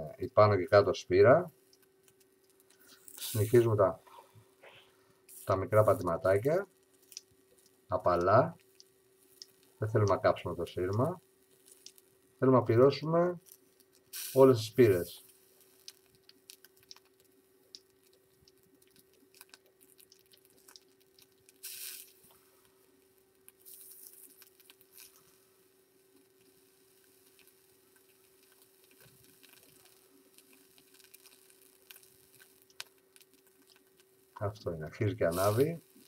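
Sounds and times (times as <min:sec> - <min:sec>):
faint steady hum: 0:00.0 - 0:36.0
wire coil sizzling: 0:00.0 - 0:36.0.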